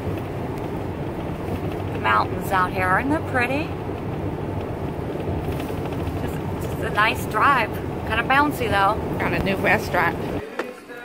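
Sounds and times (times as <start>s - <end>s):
car engine hum: 0.0s - 11.0s
road noise inside car: 0.0s - 11.0s.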